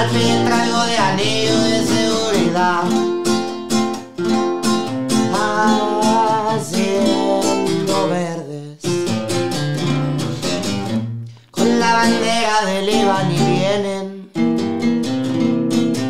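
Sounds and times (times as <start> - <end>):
man singing: 0.0 - 3.4, 5.1 - 9.2, 11.5 - 14.4
acoustic guitar strumming: 0.0 - 16.0.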